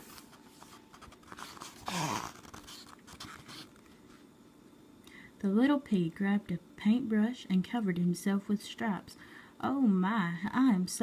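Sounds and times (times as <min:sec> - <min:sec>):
paper pages rustling: 0:00.0 - 0:04.2.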